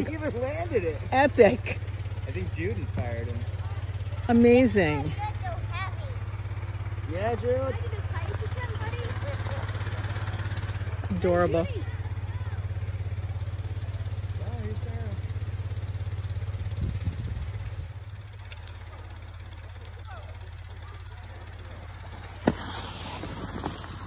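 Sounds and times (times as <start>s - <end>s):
small engine droning: 0.0s - 24.0s.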